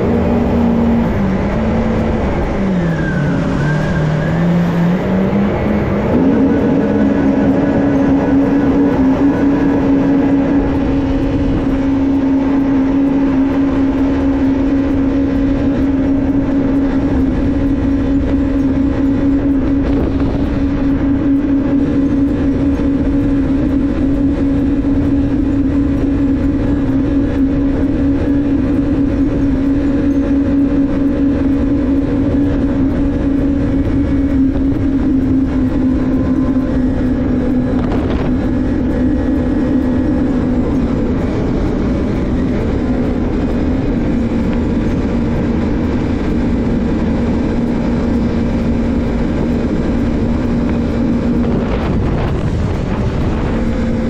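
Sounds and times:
watercraft engine droning: 0:00.0 - 0:54.0.

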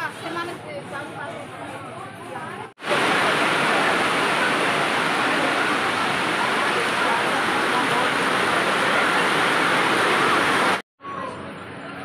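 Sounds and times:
voices: 0:01.9 - 0:11.9
heavy rain pouring: 0:02.8 - 0:10.8.

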